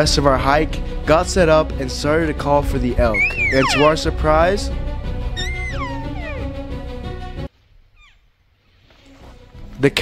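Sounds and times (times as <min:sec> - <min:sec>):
background music: 0:00.0 - 0:07.5
elk mewing: 0:03.0 - 0:04.1, 0:05.3 - 0:06.8.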